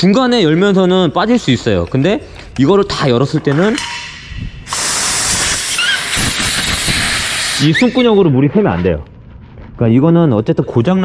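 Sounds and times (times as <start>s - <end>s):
pressurized air hissing: 4.6s - 8.8s.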